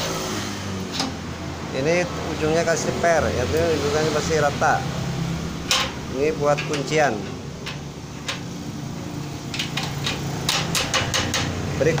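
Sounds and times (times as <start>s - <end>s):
pliers clicking on metal latch: 5.6s - 8.5s, 9.5s - 11.6s.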